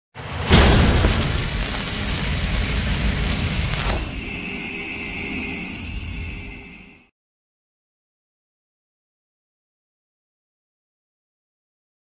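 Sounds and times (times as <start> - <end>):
cinematic boom rumbling: 0.2 - 4.4
high held ringing tone: 4.0 - 7.1.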